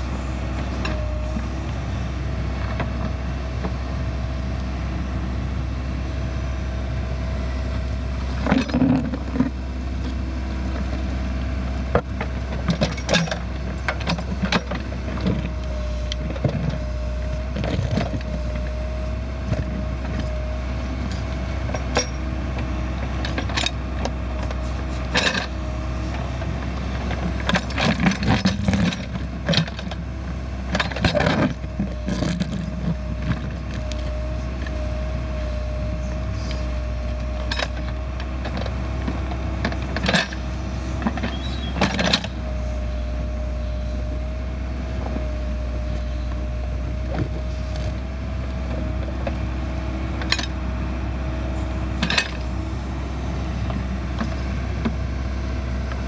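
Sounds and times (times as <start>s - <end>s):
diesel engine running: 0.0s - 56.0s
engine whine: 0.0s - 56.0s.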